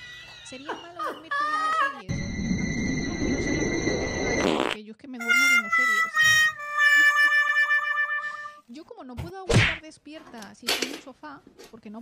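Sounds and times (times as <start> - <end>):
low rough fart: 4.4 - 4.8.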